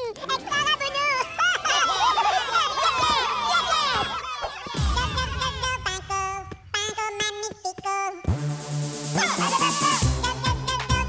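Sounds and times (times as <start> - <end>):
high cartoon voice singing: 4.8 - 8.3, 9.2 - 11.0.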